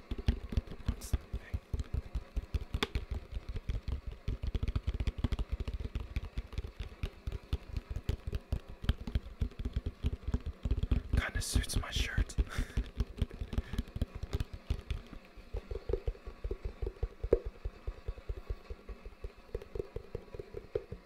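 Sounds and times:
fingers tapping plastic bucket: 0:00.0 - 0:21.0.

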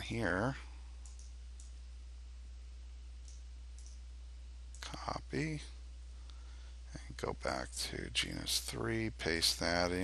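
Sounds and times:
low electrical hum: 0:00.0 - 0:10.0
computer mouse clicks: 0:01.0 - 0:01.8, 0:03.2 - 0:04.0.

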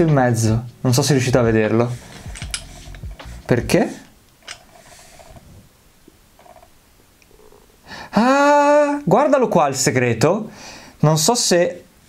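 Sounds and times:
fingers handling metal puzzle: 0:01.8 - 0:03.6.

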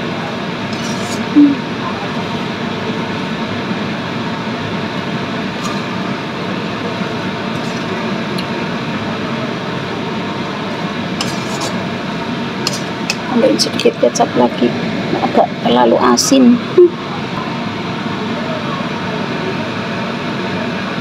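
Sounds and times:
noodles stir-frying in a wok: 0:00.0 - 0:15.0.

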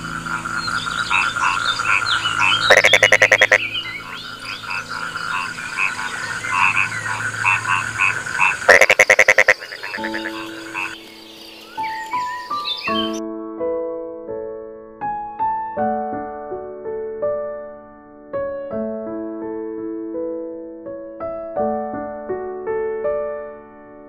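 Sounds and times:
loud pulsing frog croak: 0:00.0 - 0:11.6
frogs chirping: 0:00.0 - 0:13.2.

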